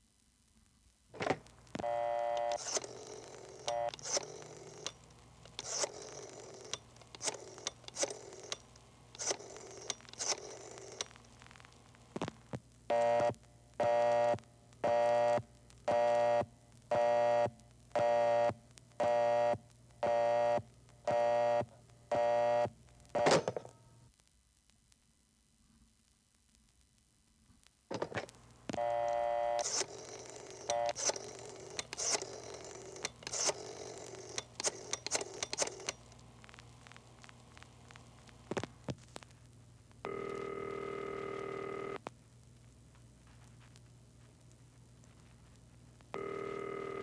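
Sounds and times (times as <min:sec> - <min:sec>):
rotary dial winding: 0:02.4 - 0:11.1, 0:29.6 - 0:36.0
dial tone: 0:28.8 - 0:35.9, 0:40.1 - 0:42.0, 0:46.2 - 0:47.0.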